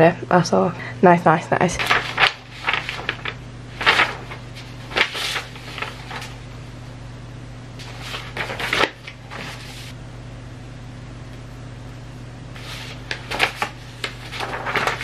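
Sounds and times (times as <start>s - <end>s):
steady low hum: 0.0s - 15.0s
paper rustling: 1.8s - 6.5s, 7.8s - 9.9s, 12.6s - 15.0s.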